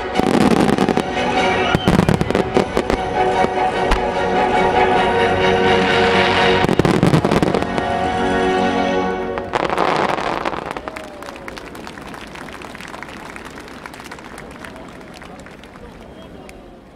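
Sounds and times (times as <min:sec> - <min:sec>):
music with sustained chords: 0:00.0 - 0:10.7.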